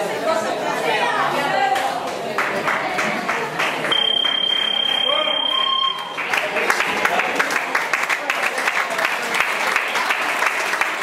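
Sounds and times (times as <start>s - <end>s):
crowd chatter: 0.0s - 11.0s
timer buzzer beep: 3.9s - 6.0s.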